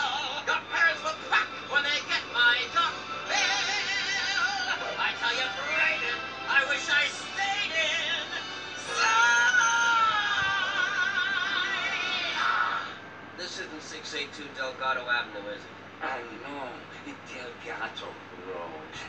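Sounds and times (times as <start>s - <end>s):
musical backing: 0.0s - 12.9s.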